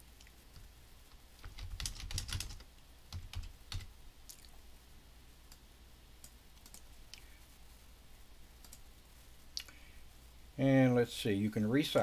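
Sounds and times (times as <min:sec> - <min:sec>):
typing on computer keyboard: 0:01.4 - 0:03.9, 0:06.6 - 0:06.8.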